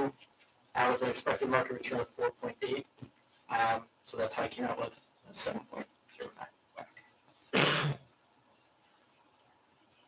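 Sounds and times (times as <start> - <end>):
person coughing: 7.5 - 8.0.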